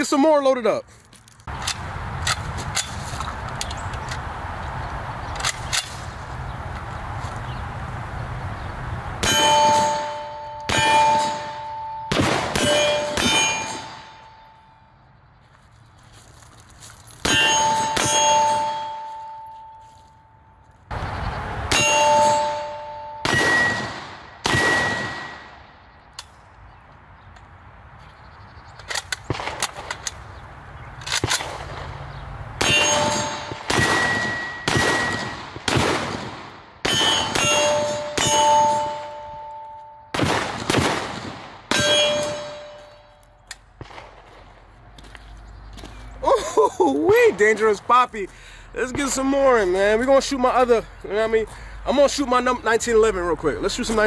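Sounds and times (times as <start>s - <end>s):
pistol shots: 9.2s - 14.3s, 23.2s - 25.6s, 32.6s - 39.2s, 40.1s - 42.9s
steel targets ringing: 9.2s - 14.9s, 17.2s - 20.6s, 21.7s - 25.6s, 32.6s - 35.5s, 36.8s - 40.2s, 41.7s - 43.4s.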